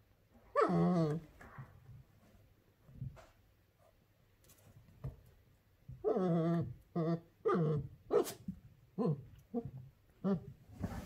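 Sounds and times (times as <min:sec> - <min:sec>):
puppy barking and whining: 0:00.4 - 0:01.3, 0:06.0 - 0:10.6.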